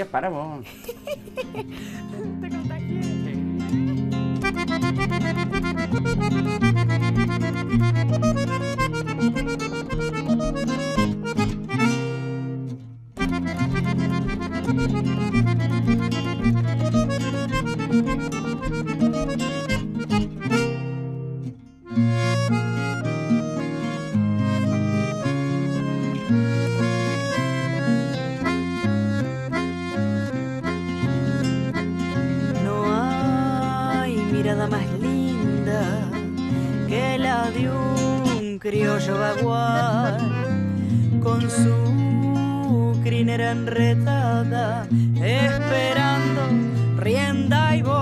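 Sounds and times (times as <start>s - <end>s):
accordion: 0.0s - 48.0s
acoustic guitars: 0.0s - 48.0s
woman singing: 2.1s - 3.4s, 32.6s - 48.0s.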